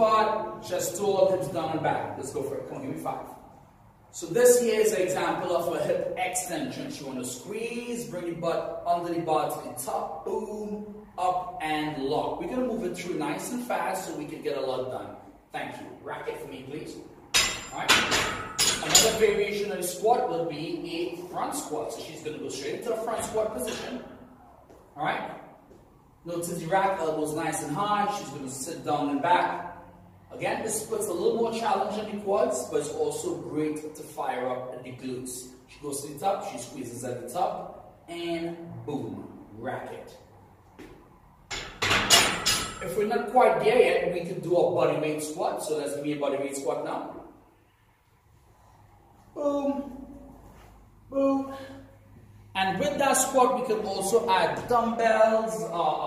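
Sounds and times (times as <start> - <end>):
man's voice: 0.0 - 3.2, 49.4 - 50.1, 52.6 - 56.0
barbell clanking on metal rack: 17.4 - 19.2, 41.5 - 42.9.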